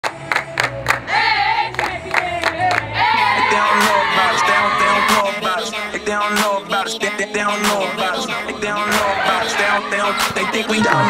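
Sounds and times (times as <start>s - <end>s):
women clapping in rhythm: 0.0s - 1.1s, 1.7s - 2.9s
person singing a chant: 2.2s - 11.0s.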